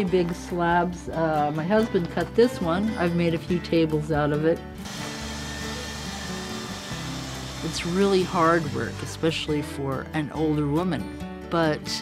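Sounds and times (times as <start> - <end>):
small engine running: 4.8 - 9.4.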